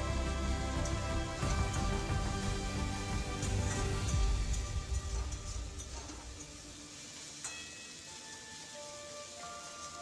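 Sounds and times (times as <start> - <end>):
background music: 0.0 - 10.0
onions sizzling in a wok: 0.0 - 10.0.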